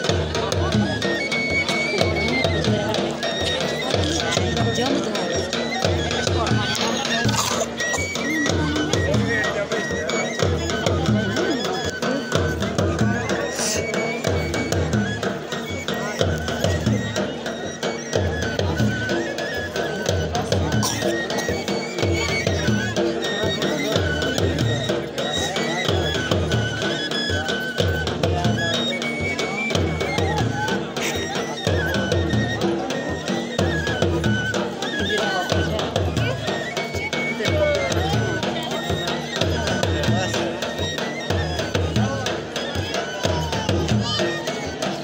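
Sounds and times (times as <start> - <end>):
crowd voices: 0.0 - 45.0
drums beating: 0.0 - 45.0
wind instrument melody: 0.0 - 45.0.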